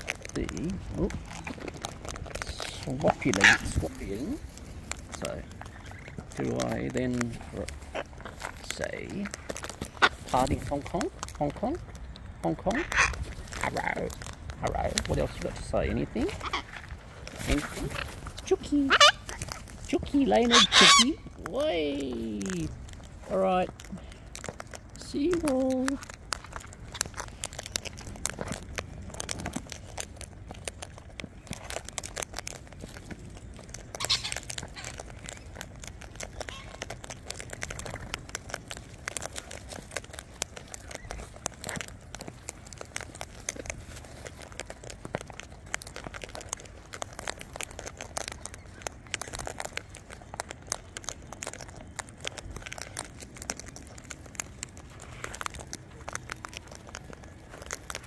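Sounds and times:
beaks rummaging through seed: 0.0 - 58.0
birds cracking seeds: 0.0 - 58.0.

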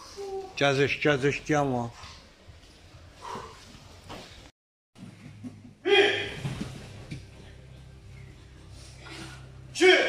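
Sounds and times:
steady low hum: 5.0 - 9.8
person shouting: 5.8 - 6.4, 9.8 - 10.0.

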